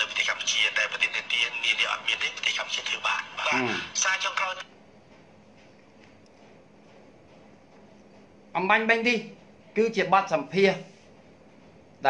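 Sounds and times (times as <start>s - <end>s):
man speaking over telephone: 0.0s - 4.6s.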